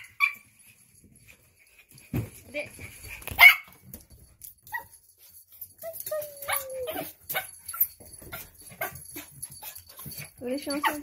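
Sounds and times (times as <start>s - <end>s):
dog whining: 5.8s - 10.1s.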